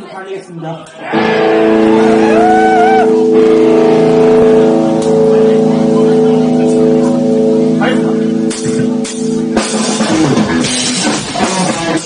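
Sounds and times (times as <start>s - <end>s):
bass guitar: 1.0s - 12.0s
bending guitar note: 1.1s - 10.8s
distorted electric guitar chord: 1.1s - 12.0s.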